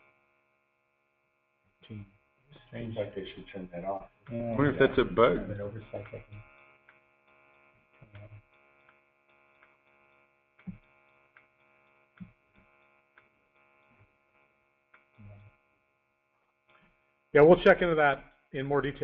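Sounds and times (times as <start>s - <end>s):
faint electrical hum: 0.0s - 19.0s
faint clicks: 6.0s - 14.1s.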